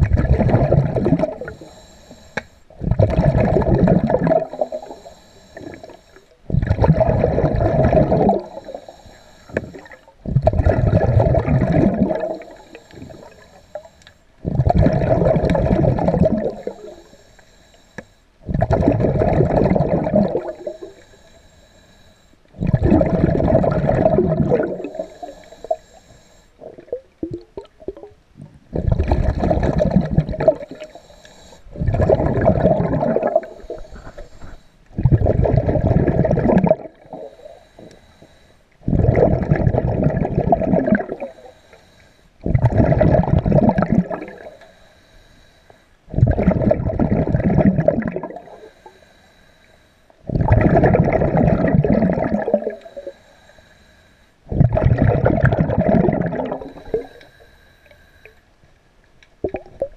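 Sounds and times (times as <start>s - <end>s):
underwater breath bubbles: 0.0s - 58.4s, 59.4s - 59.9s.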